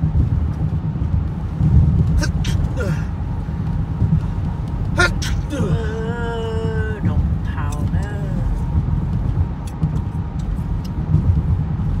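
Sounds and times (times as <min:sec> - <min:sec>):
car cabin road and wind rumble: 0:00.0 - 0:12.0.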